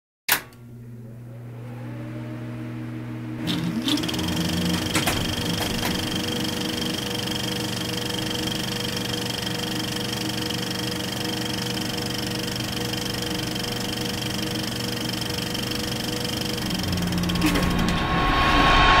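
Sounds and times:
low hum: 0.6 - 19.0
high whine: 0.8 - 19.0.

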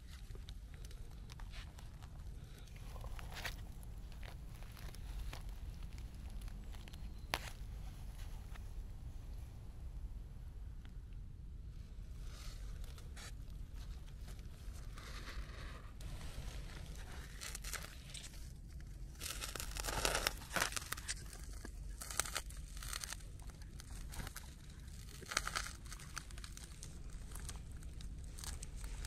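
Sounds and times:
hand rustling through dry leaves: 14.9 - 18.5.

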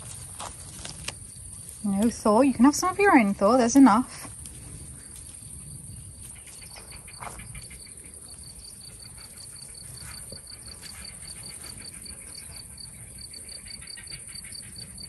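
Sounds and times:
crickets chirping: 0.0 - 15.0.

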